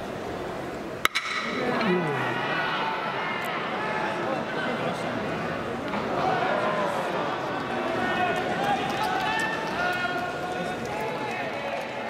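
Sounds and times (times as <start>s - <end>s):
crowd calling and shouting: 0.0s - 12.0s
scattered claps: 7.6s - 12.0s.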